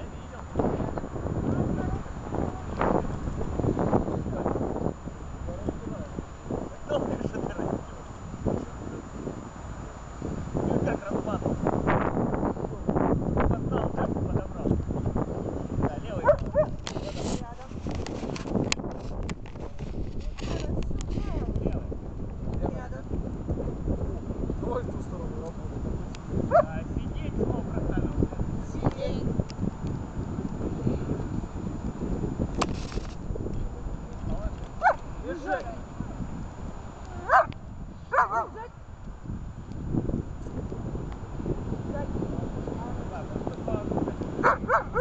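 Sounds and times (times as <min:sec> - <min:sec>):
wind rumble on microphone: 0:00.0 - 0:45.0
dog yelping: 0:16.2 - 0:16.8, 0:37.2 - 0:37.5, 0:38.1 - 0:38.6, 0:44.4 - 0:45.0.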